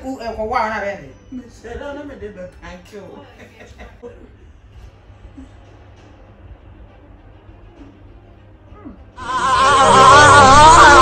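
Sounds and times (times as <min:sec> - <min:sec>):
faint vocal sound: 0:08.7 - 0:11.0.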